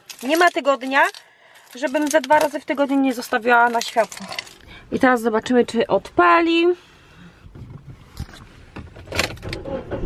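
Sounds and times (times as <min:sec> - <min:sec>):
car engine rumble: 0:01.7 - 0:10.0
car starter motor cranking: 0:08.8 - 0:10.0.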